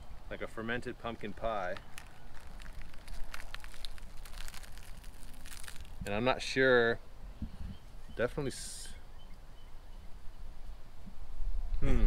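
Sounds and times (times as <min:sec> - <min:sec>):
fruit husk tearing and cracking: 0:01.0 - 0:06.4.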